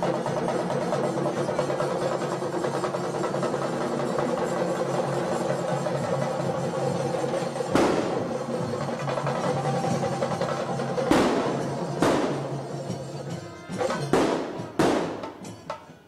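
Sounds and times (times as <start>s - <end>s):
drumming on tom-toms: 0.0s - 16.0s
sharp loud crack: 7.7s - 8.4s, 11.1s - 12.5s, 14.1s - 15.4s.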